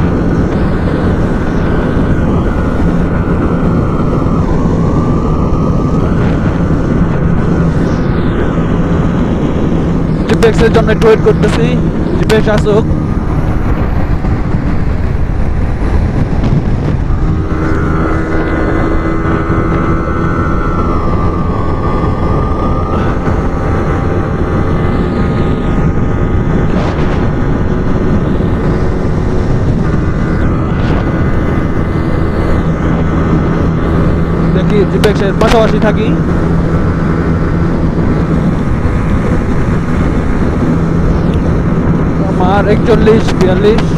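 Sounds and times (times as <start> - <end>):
motorcycle engine at high revs: 0.0 - 43.9
wind rushing over microphone: 0.0 - 43.9.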